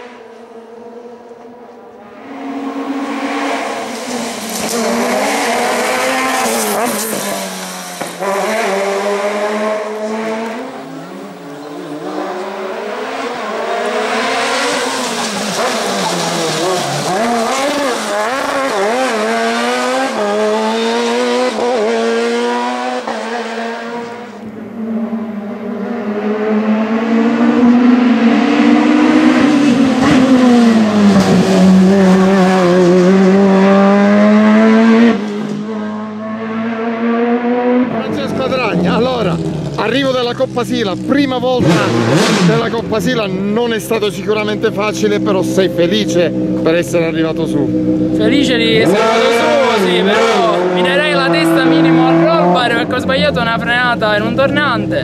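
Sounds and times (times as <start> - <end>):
race car engine revving: 0.0 - 55.0.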